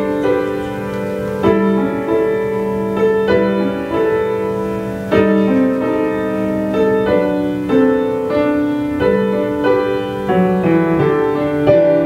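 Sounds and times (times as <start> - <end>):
grand piano playing slow chords: 0.0 - 12.0.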